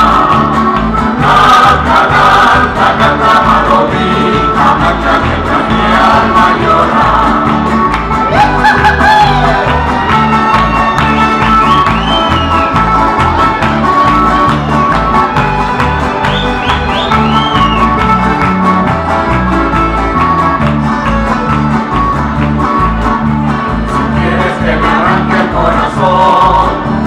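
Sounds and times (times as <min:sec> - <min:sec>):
accordion: 0:00.0 - 0:27.0
electric bass: 0:00.0 - 0:27.0
strummed guitars: 0:00.0 - 0:27.0.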